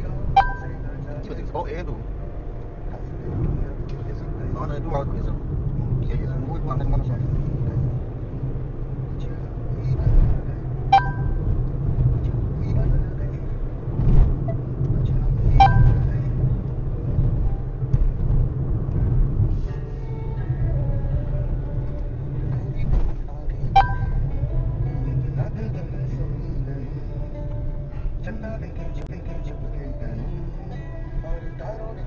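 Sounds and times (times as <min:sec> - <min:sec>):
car driving rumble from inside: 0:00.0 - 0:32.0
brief sharp blips: 0:00.4 - 0:00.8, 0:10.9 - 0:11.4, 0:15.6 - 0:16.1, 0:23.8 - 0:24.2.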